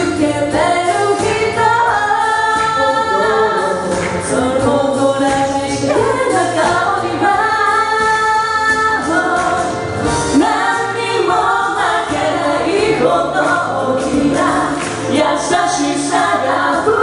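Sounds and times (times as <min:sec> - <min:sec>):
a cappella group singing in harmony: 0:00.0 - 0:17.0.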